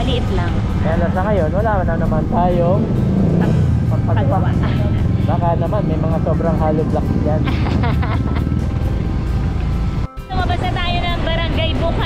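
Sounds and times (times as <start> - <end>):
background music: 0.0 - 12.0
wind and road noise: 0.0 - 12.0.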